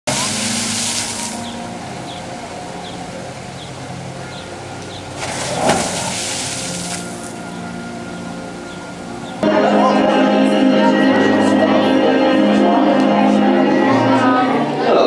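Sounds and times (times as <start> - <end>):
water rushing and splashing over rocks: 0.0 - 7.6.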